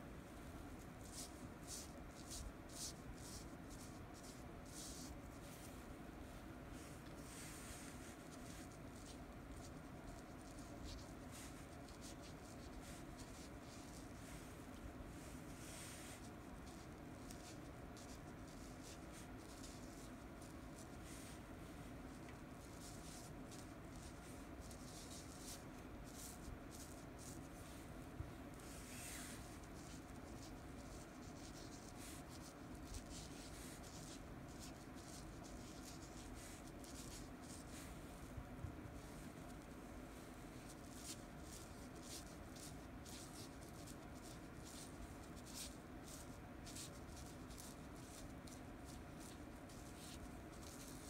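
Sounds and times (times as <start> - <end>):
brush pen scratching on paper: 1.0 - 5.7, 6.8 - 21.5, 22.1 - 27.9, 28.5 - 38.1, 40.5 - 51.0.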